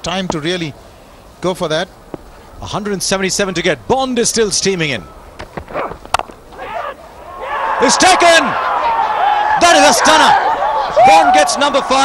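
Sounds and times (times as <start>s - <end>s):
crowd noise: 5.0s - 12.0s.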